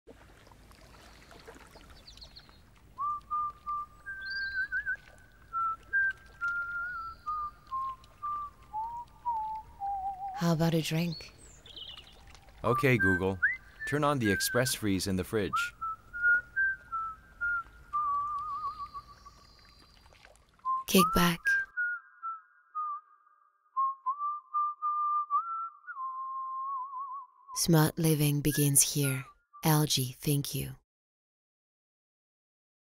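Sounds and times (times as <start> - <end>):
second whistled line: 3.0 - 10.4, 15.4 - 19.2, 20.7 - 27.5
whistled melody: 3.0 - 10.5, 12.6 - 19.6, 20.6 - 27.6.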